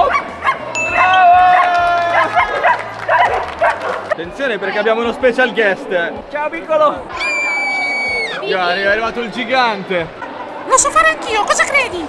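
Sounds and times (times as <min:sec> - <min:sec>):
dogs yapping: 0:00.0 - 0:04.2.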